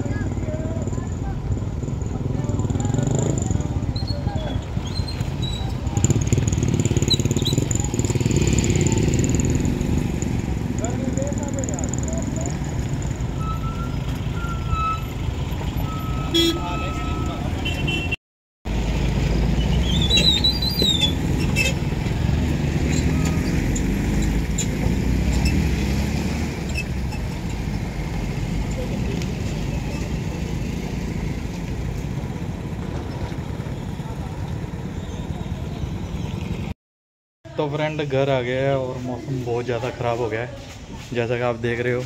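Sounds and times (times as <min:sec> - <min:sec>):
road traffic passing: 0:00.0 - 0:36.8, 0:37.5 - 0:42.0.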